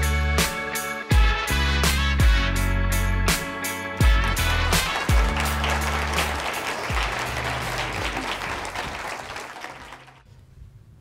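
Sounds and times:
audience applause: 4.2 - 10.2.

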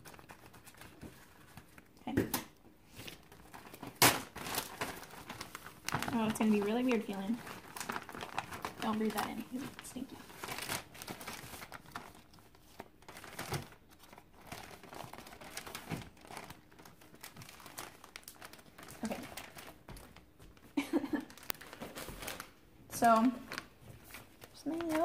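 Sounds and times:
plastic bags crinkling: 2.9 - 25.0.

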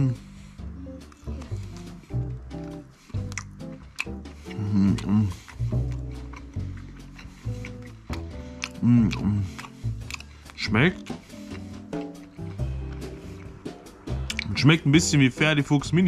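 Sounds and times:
background music with low notes: 0.0 - 16.0
chewing: 1.0 - 14.6
biting into sausage: 1.1 - 13.6, 14.2 - 14.6
mouth clicks: 1.1 - 14.6.

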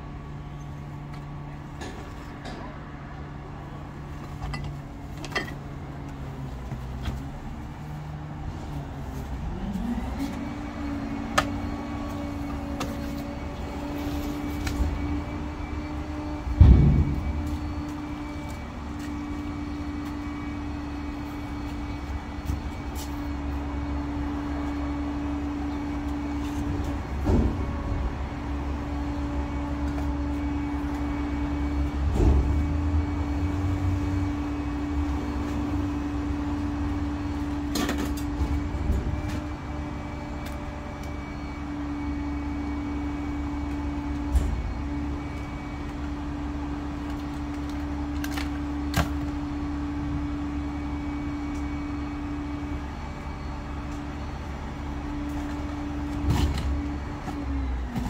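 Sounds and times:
loud thump: 16.5 - 17.8.

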